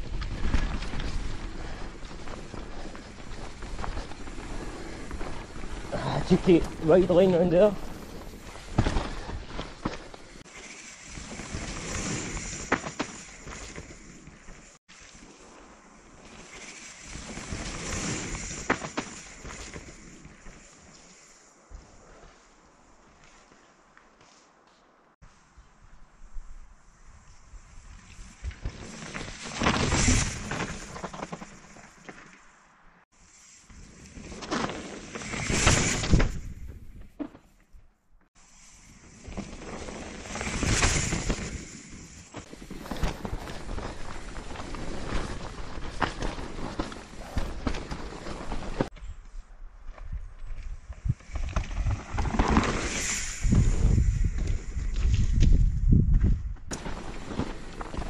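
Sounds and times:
bike rattling: 0.0s - 23.2s, 27.6s - 37.6s, 38.4s - 49.2s, 49.9s - 58.0s
tyres on dirt: 49.9s - 55.6s, 56.2s - 58.0s
wind on microphone: 53.0s - 56.7s.

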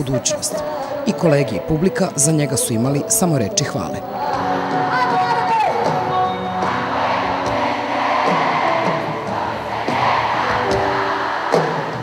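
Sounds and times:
live pop band playing: 0.6s - 12.0s
concert crowd noise: 4.0s - 12.0s.

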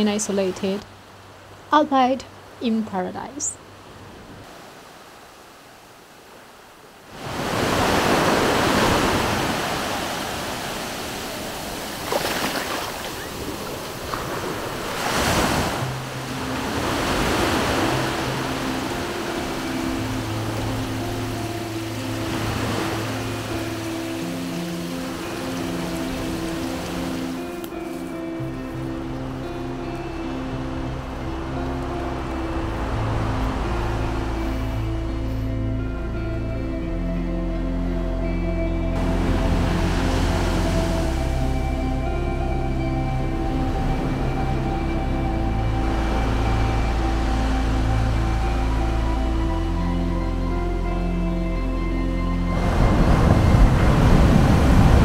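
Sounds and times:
ocean waves breaking on shore: 3.6s - 35.6s, 39.0s - 42.8s, 43.4s - 51.4s, 52.4s - 55.0s.

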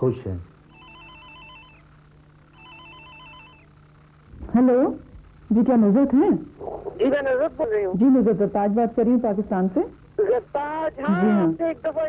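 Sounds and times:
telephone ringing with warbling trill: 0.7s - 1.9s, 2.5s - 3.8s.

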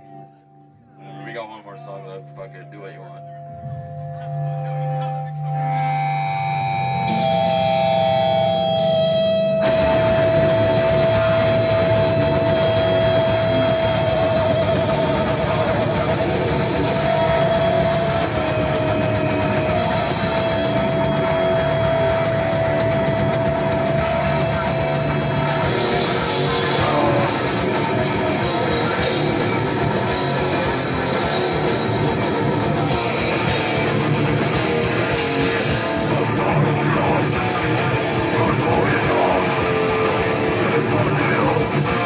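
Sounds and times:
electric guitar held notes: 0.0s - 42.0s
heavy metal band with drums: 4.3s - 42.0s.

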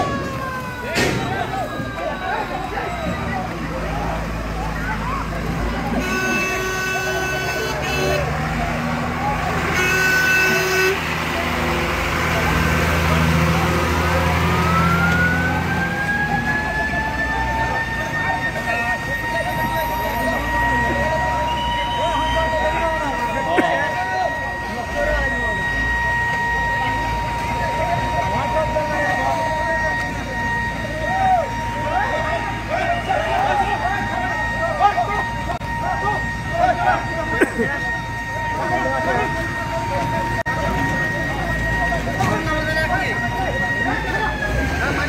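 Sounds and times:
crowd voices: 0.0s - 45.0s
truck engines idling: 0.0s - 45.0s
vehicle siren wailing: 0.0s - 45.0s
vehicle horn blasts: 5.9s - 8.4s, 9.7s - 11.0s.

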